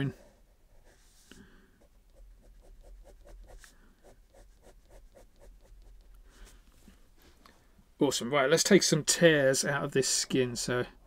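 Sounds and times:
pen nib scratching on paper: 0:02.0 - 0:06.1.

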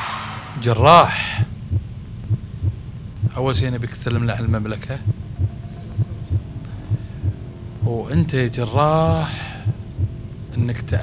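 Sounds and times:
faint steady hum: 0:00.0 - 0:11.0
heartbeat thuds: 0:00.8 - 0:03.8, 0:04.4 - 0:08.3, 0:09.0 - 0:10.2.

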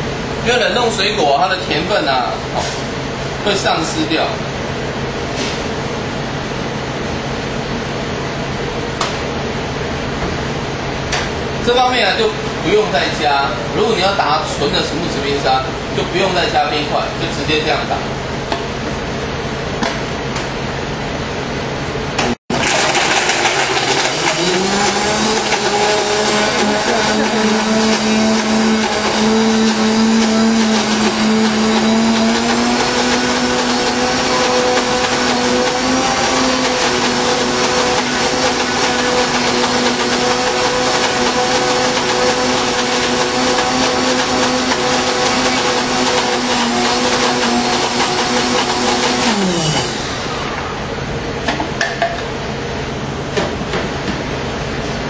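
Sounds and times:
blender motor running: 0:22.2 - 0:50.8.

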